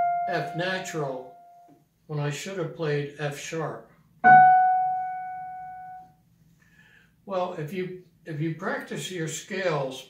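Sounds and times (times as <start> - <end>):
digital piano note: 0.0 - 1.7, 4.2 - 6.1.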